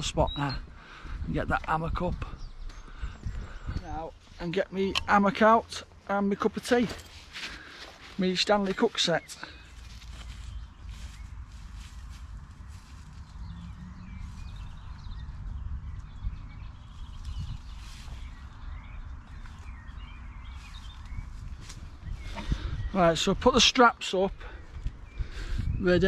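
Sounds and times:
wind rumble on microphone: 0.0 - 5.1, 9.8 - 23.7, 24.4 - 26.0
faint songbird chirps: 6.6 - 26.0
footsteps swishing through grass: 9.8 - 14.9.

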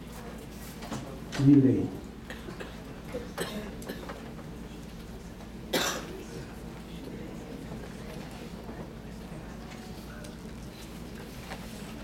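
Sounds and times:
person coughing: 3.4 - 4.2, 5.7 - 6.2.

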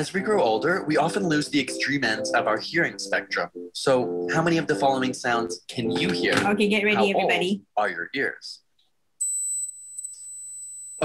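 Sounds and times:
high pure test tone: 0.0 - 7.6.

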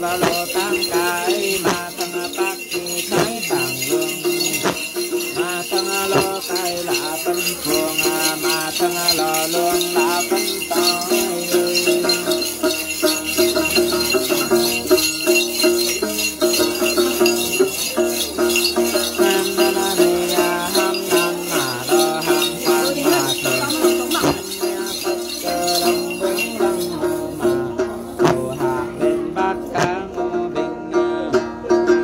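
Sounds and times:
jingle bells shaken in rhythm: 0.0 - 30.6
person singing melody: 0.0 - 32.0.

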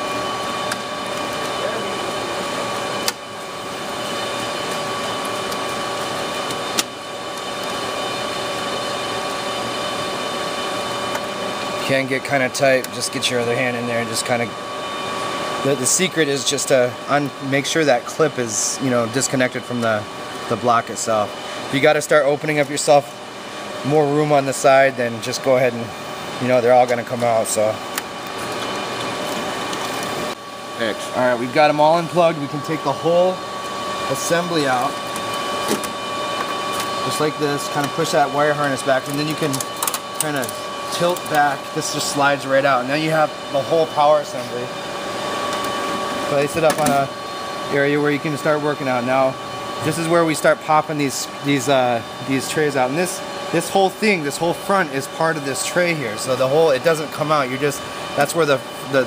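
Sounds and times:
whirring hum of fans: 0.0 - 59.0.

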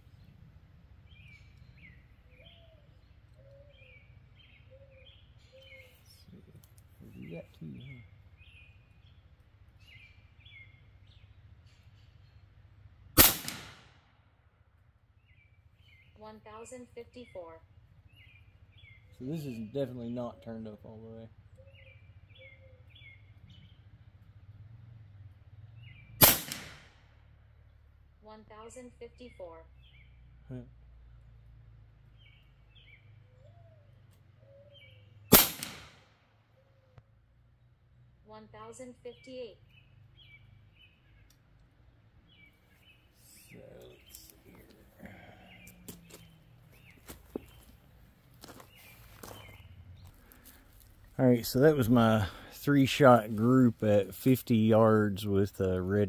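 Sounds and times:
birds chirping faintly: 0.0 - 12.9, 15.1 - 26.3, 27.2 - 35.4, 36.4 - 56.0
air rifle shot crack: 13.2 - 14.0, 26.2 - 27.0, 35.3 - 36.2.

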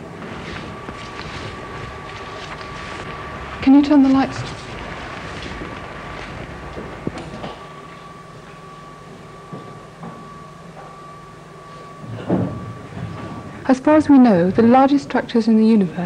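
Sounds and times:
projector humming: 0.0 - 16.0
thin steady whine: 0.0 - 16.0.

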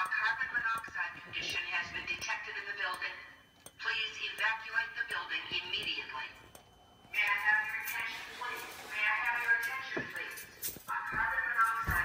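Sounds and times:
recorded voice announcement over speaker: 0.0 - 6.5, 7.1 - 12.0.

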